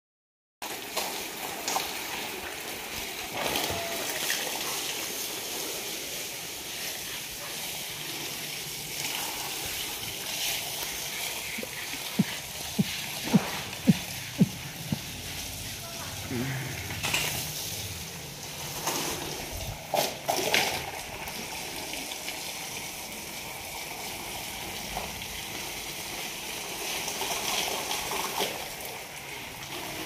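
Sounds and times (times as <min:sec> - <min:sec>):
hose water spraying and splashing: 0:00.6 - 0:30.0.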